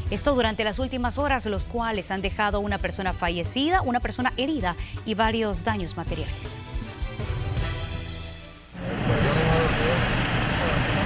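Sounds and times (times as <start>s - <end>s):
vehicle engines running: 8.8s - 11.0s.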